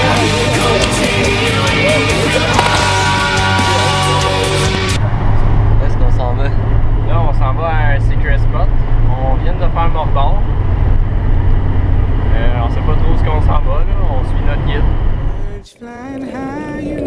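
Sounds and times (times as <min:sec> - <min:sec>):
men talking: 0:00.0 - 0:04.7, 0:05.8 - 0:10.5, 0:12.3 - 0:15.8
car road and engine rumble: 0:00.0 - 0:15.6.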